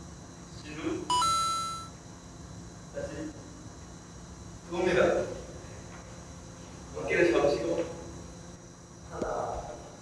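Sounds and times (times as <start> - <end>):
two-note electronic chime: 1.1 - 1.9.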